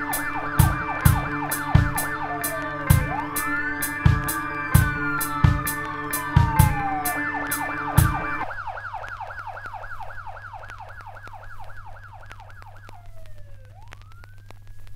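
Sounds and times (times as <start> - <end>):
instrumental drum beat: 0.0 - 8.4
siren wailing: 0.0 - 14.7.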